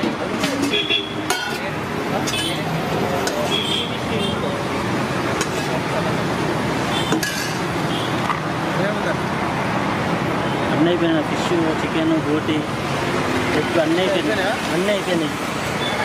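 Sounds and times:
road traffic noise: 0:00.0 - 0:16.0
ladle clinking on steel pots: 0:00.4 - 0:02.6, 0:03.2 - 0:03.5, 0:05.4 - 0:05.8, 0:07.1 - 0:07.7.

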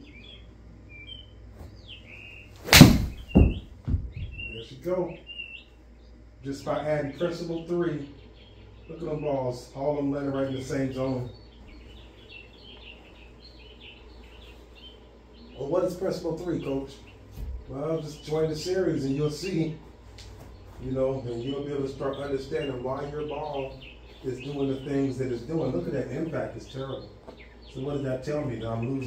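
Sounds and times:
bird chirps: 0:00.0 - 0:29.0
steady low hum: 0:00.0 - 0:29.0
golf iron striking ball: 0:02.6 - 0:03.6.

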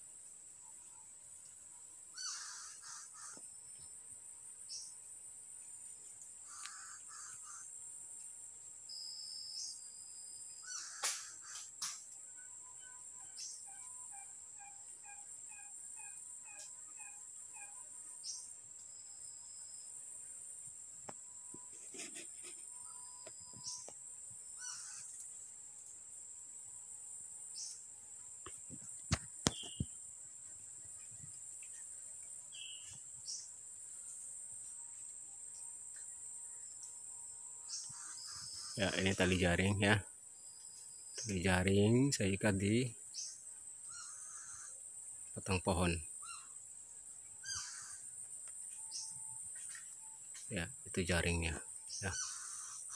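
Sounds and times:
high insect drone: 0:00.0 - 0:52.9
bird calling repeated notes: 0:02.2 - 0:03.4, 0:12.4 - 0:18.4, 0:24.6 - 0:25.1, 0:29.5 - 0:30.0, 0:47.4 - 0:48.0
short bird chirps: 0:29.4 - 0:30.0.

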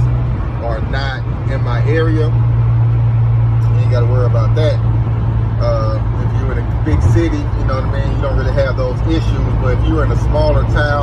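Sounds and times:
man talking: 0:00.0 - 0:02.4, 0:03.6 - 0:04.9, 0:05.6 - 0:11.0
van engine drone inside cab: 0:00.0 - 0:11.0.

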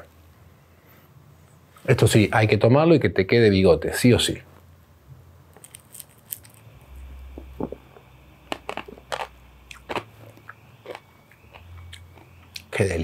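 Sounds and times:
faint low rumble: 0:04.4 - 0:13.0
mouth clicks and lip smacks: 0:07.3 - 0:12.7.

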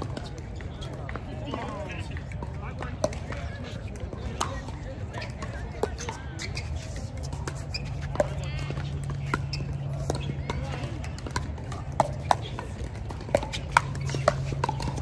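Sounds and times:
paddles hitting plastic ball: 0:00.0 - 0:15.0.

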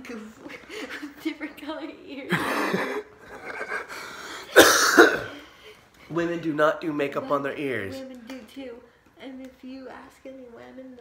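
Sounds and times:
person coughing: 0:04.5 - 0:05.5.

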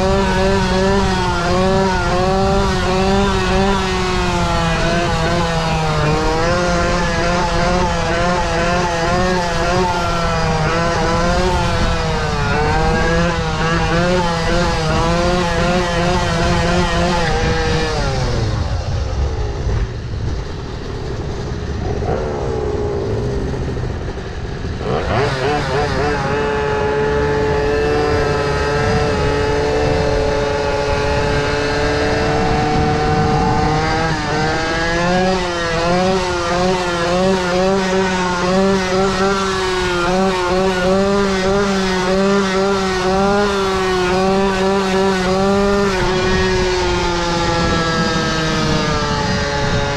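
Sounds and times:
scooter two-stroke engine revving: 0:00.0 - 0:49.9.

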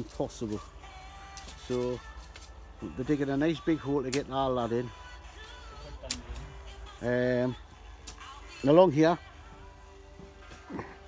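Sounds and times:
digging tool striking soil: 0:04.1 - 0:04.4, 0:06.0 - 0:06.5.

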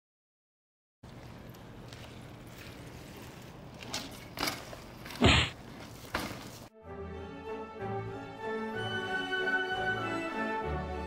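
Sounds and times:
bicycle tyres scuffing on brick: 0:01.1 - 0:06.7
bicycle loud impact: 0:01.9 - 0:06.7.

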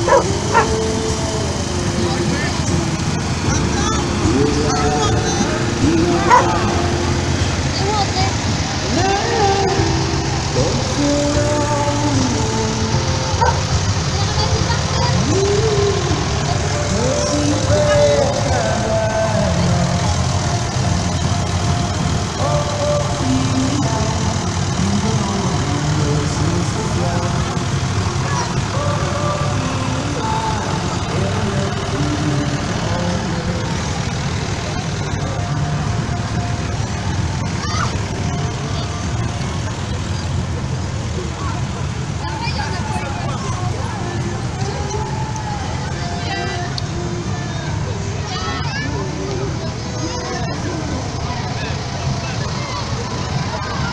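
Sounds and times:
crowd chattering: 0:00.0 - 0:53.9
tractor engine rumbling: 0:00.0 - 0:53.9.

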